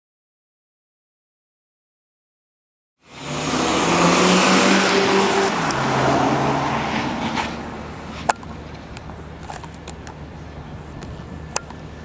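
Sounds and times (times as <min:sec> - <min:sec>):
car engine driving: 0:03.0 - 0:12.0.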